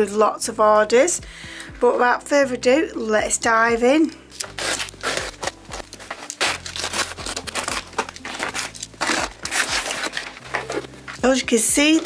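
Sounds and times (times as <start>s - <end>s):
cardboard box being opened: 4.5s - 11.2s.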